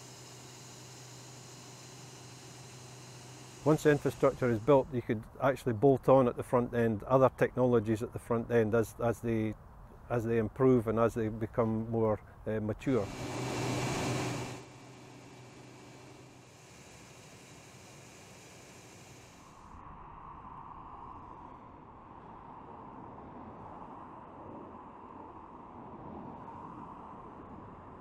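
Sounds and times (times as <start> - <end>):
distant road traffic hum: 2.1 - 18.2.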